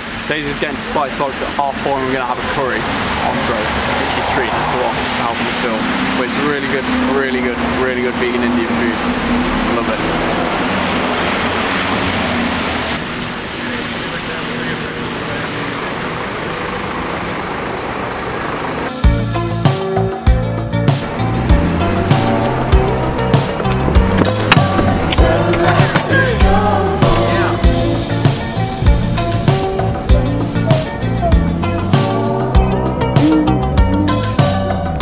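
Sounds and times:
bus passing in traffic: 0.0s - 19.0s, 20.9s - 35.0s
thin high squeals: 14.6s - 15.4s
music with steady beat: 19.0s - 35.0s.

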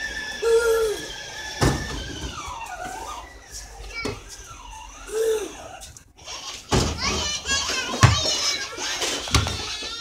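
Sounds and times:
children shouting and squealing: 0.0s - 10.0s.

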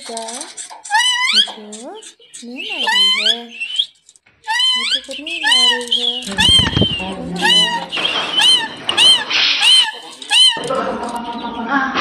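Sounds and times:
parakeet screeching: 0.8s - 11.5s.

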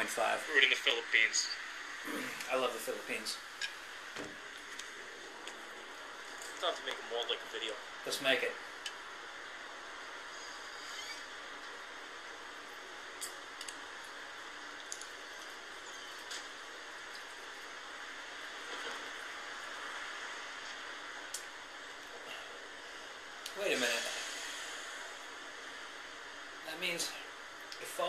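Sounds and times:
steady hiss: 0.0s - 28.0s.

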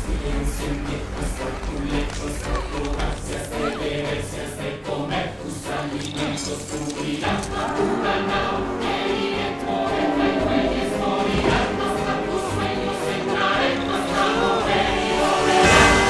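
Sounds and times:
choir singing with orchestral music: 0.0s - 16.0s.

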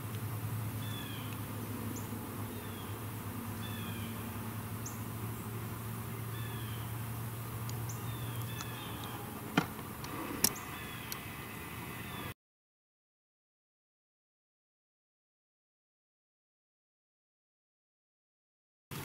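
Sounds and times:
low steady hum: 0.0s - 12.3s
bird calling with falling notes: 0.8s - 3.0s, 3.6s - 7.1s, 7.8s - 12.3s.

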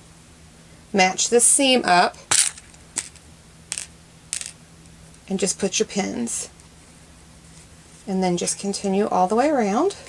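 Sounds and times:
pins clicking: 2.3s - 4.6s.

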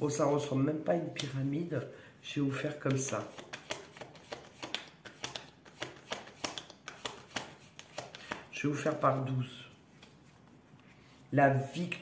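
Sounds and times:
cards shuffled on wooden table: 2.9s - 8.5s.

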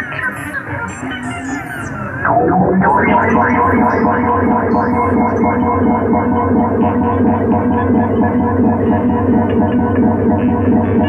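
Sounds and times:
pulsing synthesizer drone: 0.0s - 11.0s.

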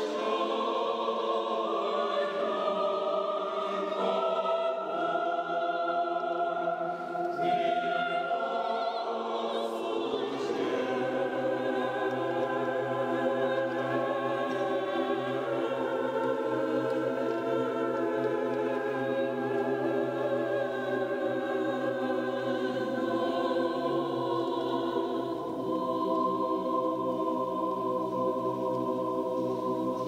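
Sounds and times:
choir singing unaccompanied: 0.0s - 30.0s.

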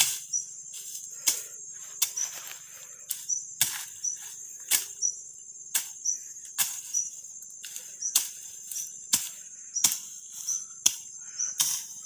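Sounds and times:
weeds swishing cut: 0.0s - 5.1s, 5.7s - 12.0s
crickets trilling: 0.0s - 12.0s.

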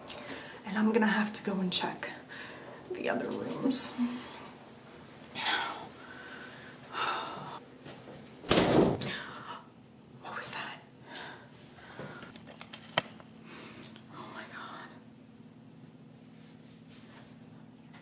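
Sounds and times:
breathy breathing: 2.3s - 2.9s, 5.4s - 7.6s
woman whispering: 5.3s - 5.9s, 10.2s - 10.9s, 14.1s - 15.1s
loud thump: 8.5s - 9.1s.

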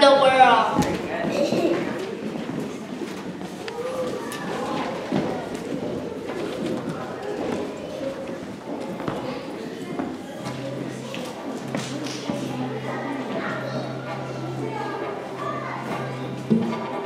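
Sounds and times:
children chattering: 0.0s - 17.0s
knocks and shuffling: 0.7s - 12.4s.

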